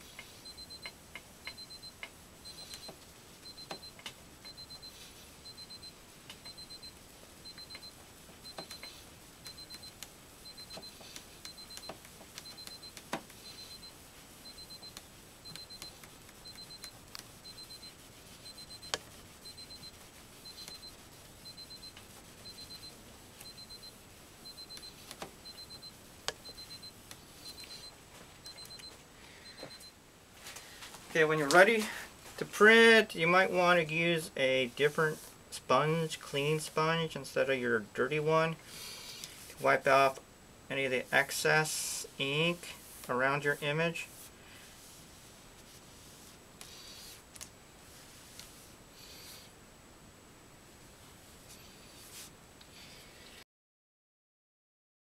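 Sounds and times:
electronic alarm beeping: 0.4 - 8.9, 9.5 - 30.0.

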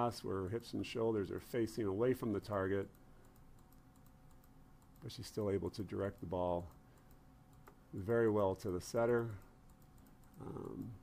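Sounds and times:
faint rapid clicks: 2.8 - 11.0.

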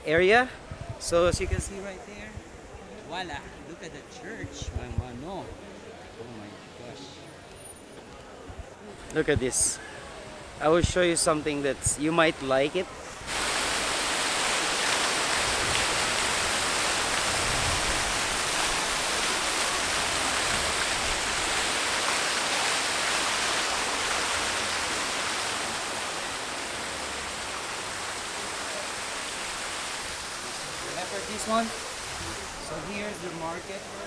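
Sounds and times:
fountain water splashing: 9.4 - 34.0.

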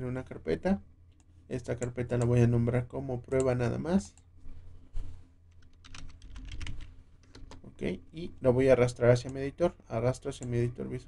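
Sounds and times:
computer keyboard typing: 5.5 - 7.6.

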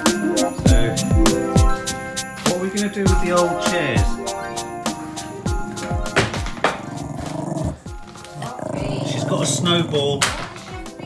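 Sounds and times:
hip-hop music with bass beat: 0.0 - 7.1
dog growling low: 6.8 - 10.2.

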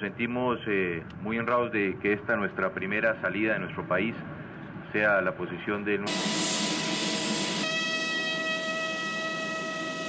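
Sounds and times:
jet engine high whine: 6.1 - 10.0
jet engine rushing hiss: 6.1 - 10.0.

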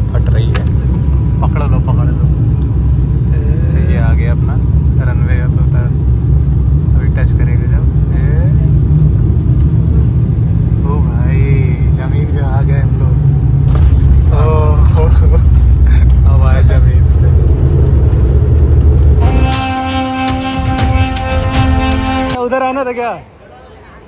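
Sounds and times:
airliner cabin rumble: 0.0 - 22.4
voices: 10.8 - 13.6, 14.2 - 17.8, 19.2 - 24.0.

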